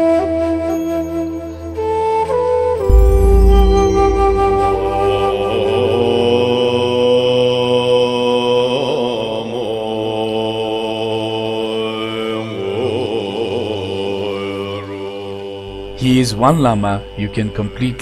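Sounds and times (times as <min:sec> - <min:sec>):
voice chanting long notes: 0:02.9 - 0:09.7, 0:11.5 - 0:18.0.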